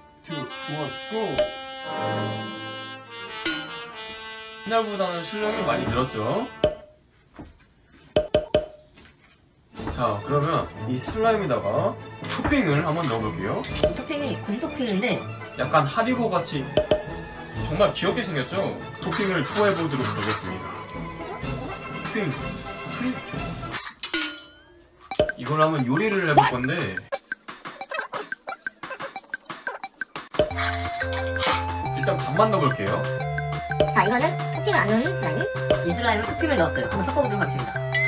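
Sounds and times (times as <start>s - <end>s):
background music: 0.0s - 7.0s, 9.6s - 24.0s, 24.9s - 38.0s
wood-block percussive hits: 1.4s - 1.6s, 6.6s - 7.0s, 8.2s - 8.9s, 13.7s - 14.2s, 16.7s - 17.2s, 24.2s - 38.0s.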